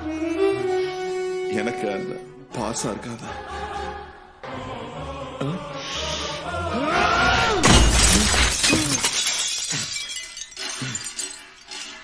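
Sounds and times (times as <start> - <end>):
glass shards crackling: 7.6 - 12.0
glass tabletop smashing: 7.6 - 12.0.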